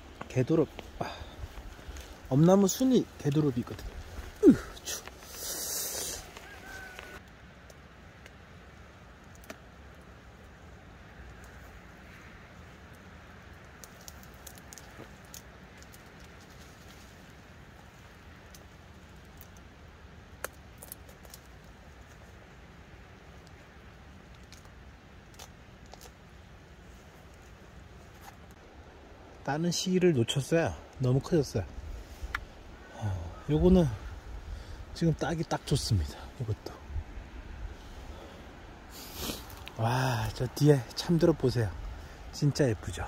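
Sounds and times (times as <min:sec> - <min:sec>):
low steady rumble: 0:07.1 - 0:43.0.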